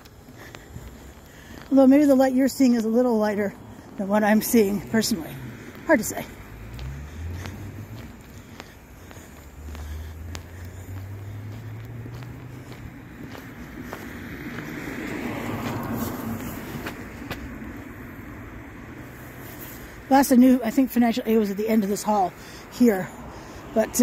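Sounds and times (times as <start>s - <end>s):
footsteps: 0.0s - 17.9s
low engine hum: 0.0s - 24.0s
vehicle passing with tyre noise: 0.0s - 24.0s.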